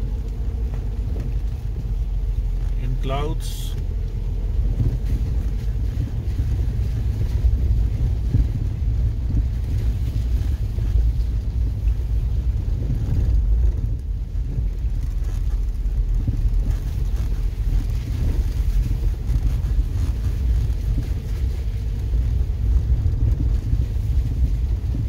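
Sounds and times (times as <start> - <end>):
vehicle on gravel road rumble: 0.0 - 25.0.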